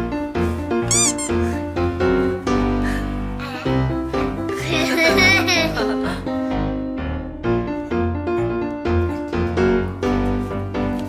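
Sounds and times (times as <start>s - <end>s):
high-pitched cry: 0.9s - 1.4s.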